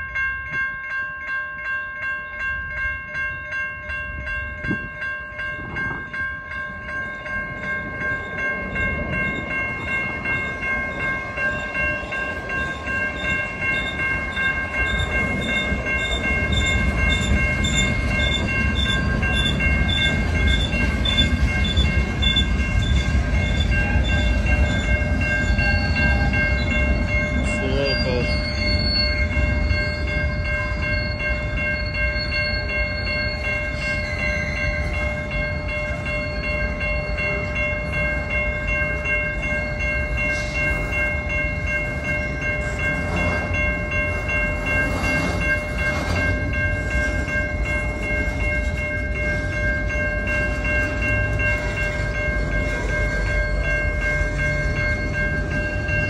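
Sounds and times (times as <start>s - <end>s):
freight train rumbling: 0.0s - 56.0s
railroad crossing bell ringing: 0.0s - 56.0s
train wheel squeal: 9.2s - 38.5s, 39.1s - 56.0s.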